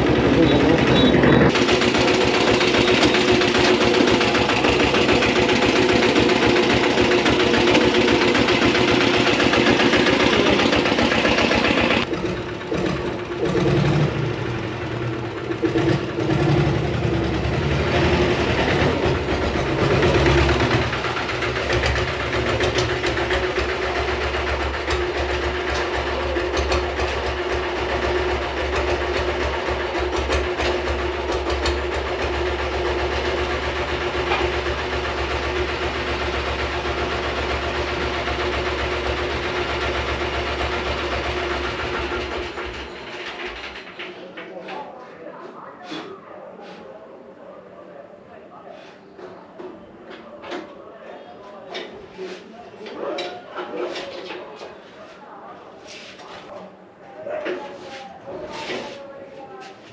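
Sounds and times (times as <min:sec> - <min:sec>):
diesel motorcycle engine running: 0:00.0 - 0:42.9.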